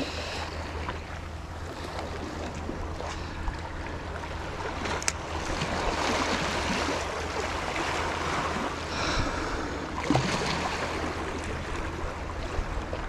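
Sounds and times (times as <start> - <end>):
water lapping against rocks: 0.0 - 13.0.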